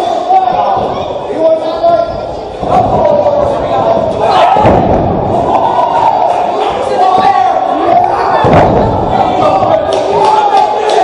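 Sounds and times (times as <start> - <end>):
people shouting: 2.6 - 11.0.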